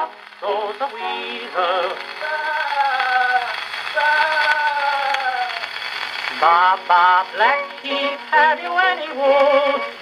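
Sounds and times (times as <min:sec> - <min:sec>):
gramophone nursery rhyme music: 0:00.0 - 0:10.0
record surface hiss: 0:00.0 - 0:10.0.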